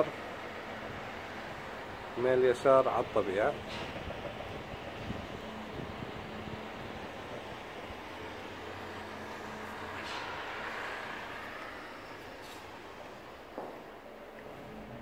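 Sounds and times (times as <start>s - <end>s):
distant traffic hum: 0.0s - 15.0s
faint low drone: 2.8s - 15.0s.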